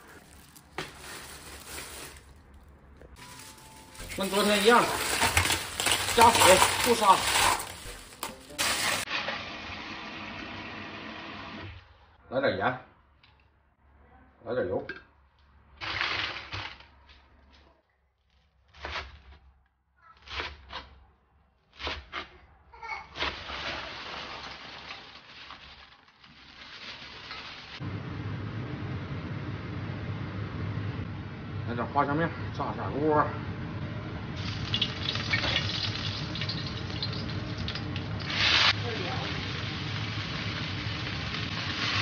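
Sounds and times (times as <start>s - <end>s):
scallion sizzling in hot oil: 3.2s - 11.6s, 23.2s - 27.8s, 34.4s - 42.0s.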